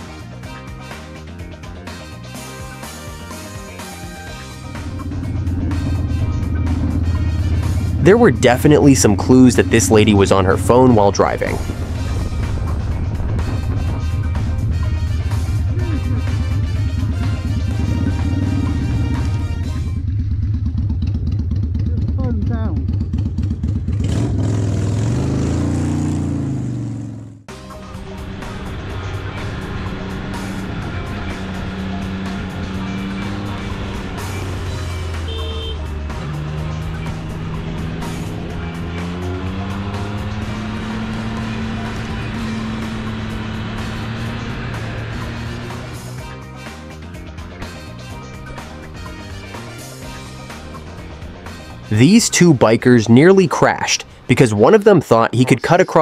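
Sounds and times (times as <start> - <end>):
sport bike engine: 0.0 - 54.8
cruiser motorcycle engine: 0.0 - 56.0.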